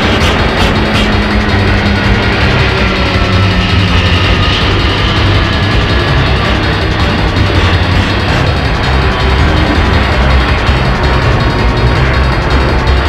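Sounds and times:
faint falling tones: 0.0 - 13.0
jet engines overhead: 0.0 - 13.0
music track: 0.0 - 13.0.

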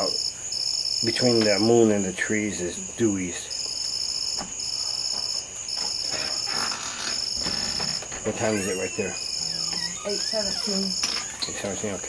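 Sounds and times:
insects humming: 0.0 - 12.0
shrill insect trill: 0.0 - 12.0.

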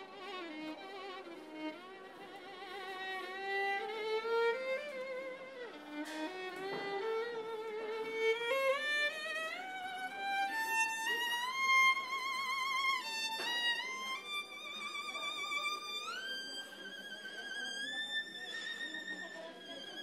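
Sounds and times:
solo violin melody: 0.0 - 20.0.

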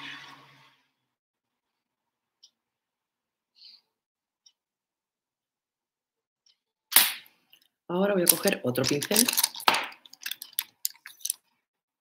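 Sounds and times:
small hard object knocking: 8.3 - 11.4.

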